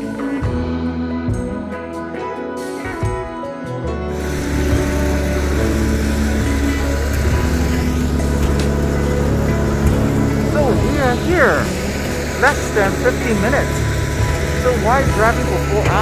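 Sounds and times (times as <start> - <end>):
background music: 0.0 - 16.0
aircraft engines humming: 4.1 - 16.0.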